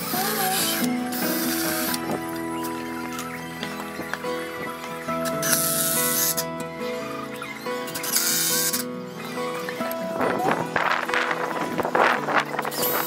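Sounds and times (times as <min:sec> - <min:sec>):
background music held notes: 0:00.0 - 0:13.0
cordless drill boring into wood: 0:00.0 - 0:13.0.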